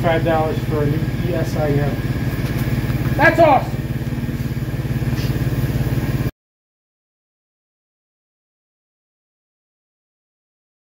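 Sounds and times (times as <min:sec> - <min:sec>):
car engine idling: 0:00.0 - 0:06.3.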